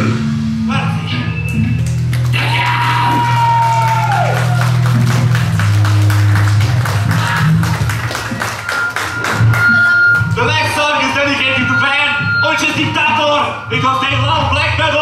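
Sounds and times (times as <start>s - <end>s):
distorted guitar and bass: 0.0s - 15.0s.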